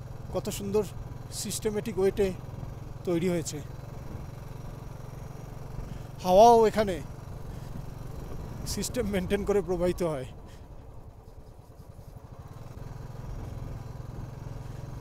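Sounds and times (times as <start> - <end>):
motorcycle engine cruising: 0.0 - 15.0
man's voice: 8.7 - 10.3.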